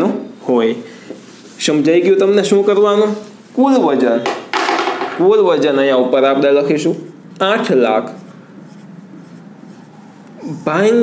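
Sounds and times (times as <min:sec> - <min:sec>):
marker scratching on whiteboard: 0:06.8 - 0:11.0.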